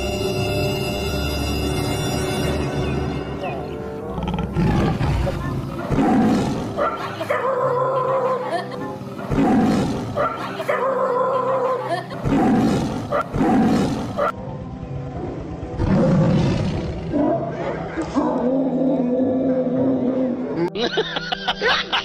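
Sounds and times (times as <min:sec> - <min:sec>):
background music: 0:00.0 - 0:22.0
lion roaring: 0:04.0 - 0:08.0, 0:09.2 - 0:11.4, 0:12.2 - 0:14.3, 0:15.7 - 0:20.6.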